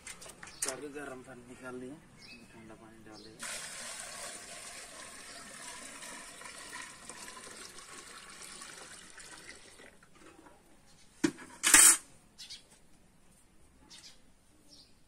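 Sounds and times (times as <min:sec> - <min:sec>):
water poured from metal bucket: 0:03.4 - 0:10.1.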